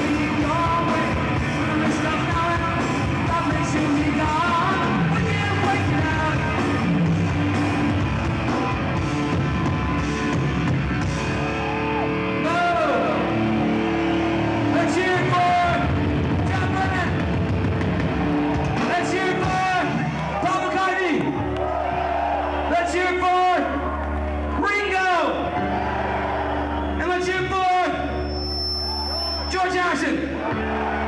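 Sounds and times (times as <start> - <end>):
man singing: 0.0 - 6.6
punk band playing live: 0.0 - 20.7.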